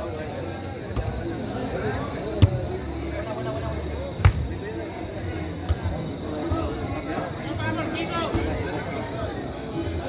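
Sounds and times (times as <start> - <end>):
crowd chatter: 0.0 - 10.0
football being kicked: 2.4 - 2.6, 4.2 - 4.5.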